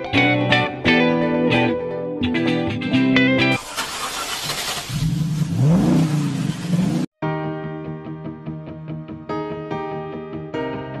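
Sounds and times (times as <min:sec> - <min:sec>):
guitar music: 0:00.0 - 0:03.6, 0:07.2 - 0:11.0
motorcycle engine revving: 0:05.0 - 0:07.1.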